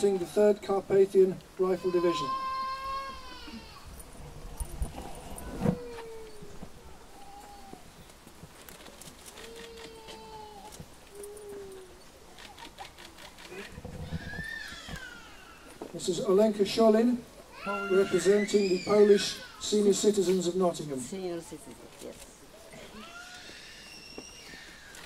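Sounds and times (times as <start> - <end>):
shuffling: 3.1 - 16.1.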